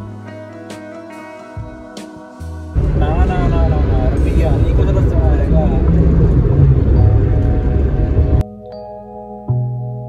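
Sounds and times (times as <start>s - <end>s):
road and engine noise in car: 2.8s - 8.4s.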